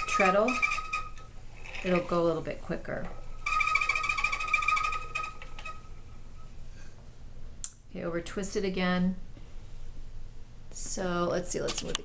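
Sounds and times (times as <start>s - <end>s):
spinning wheel whirring: 0.0s - 6.1s.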